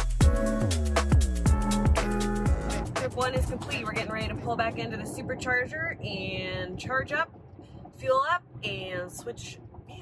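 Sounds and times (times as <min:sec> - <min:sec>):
woman talking in a car: 0:02.9 - 0:10.0.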